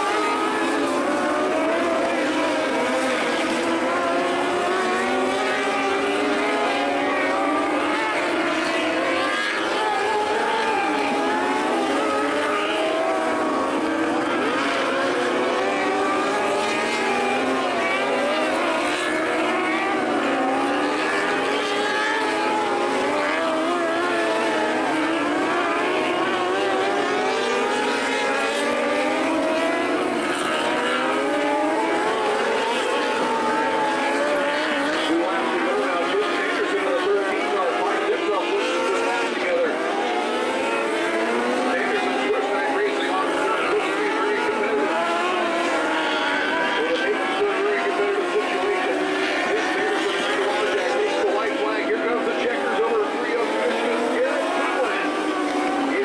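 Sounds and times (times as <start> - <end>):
racing car engines high-revving: 0.0 - 56.0.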